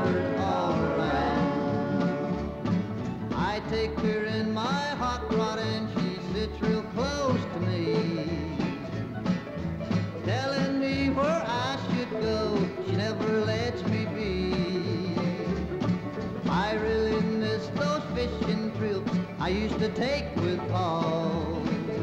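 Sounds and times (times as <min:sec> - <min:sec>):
man singing lead vocal: 0:00.0 - 0:02.3, 0:03.3 - 0:09.0, 0:10.2 - 0:15.6, 0:16.4 - 0:22.0
bluegrass band playing: 0:00.0 - 0:22.0
upright bass pulsing: 0:00.0 - 0:22.0.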